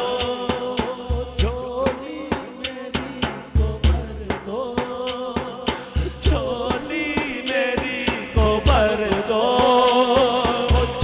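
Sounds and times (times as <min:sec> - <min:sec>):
steady drum beat: 0:00.0 - 0:11.0.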